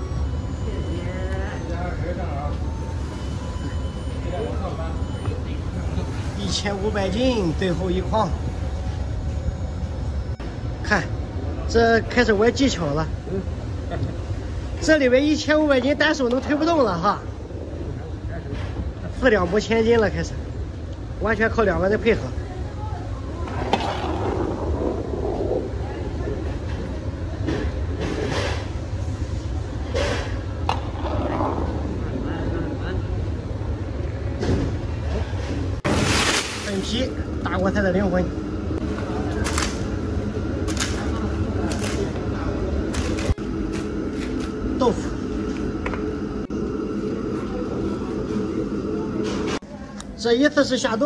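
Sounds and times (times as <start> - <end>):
low rumble: 23.2 - 28.0.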